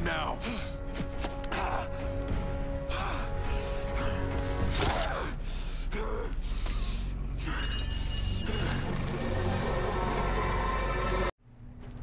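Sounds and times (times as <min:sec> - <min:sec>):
tense music with low drone: 0:00.0 - 0:12.0.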